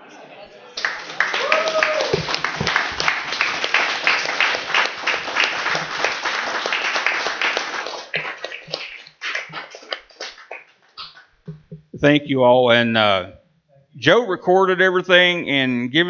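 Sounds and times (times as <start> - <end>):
audience applauding: 0.7 - 10.8.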